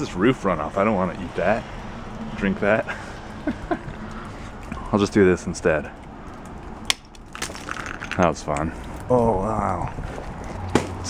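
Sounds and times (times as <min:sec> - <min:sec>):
icicle cracking: 0:01.0 - 0:09.2
ice pieces clattering: 0:07.3 - 0:08.3.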